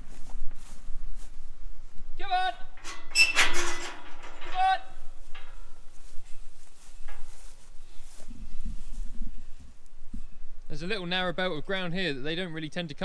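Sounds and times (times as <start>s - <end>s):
rustling through long grass: 0.0s - 2.1s, 4.0s - 10.7s
wind buffeting microphone: 4.1s - 10.7s.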